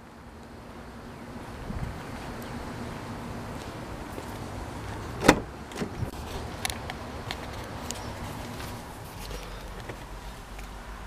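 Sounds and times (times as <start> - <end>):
car door latch click: 5.2 - 5.9
car door clicks and knocks: 5.2 - 6.0.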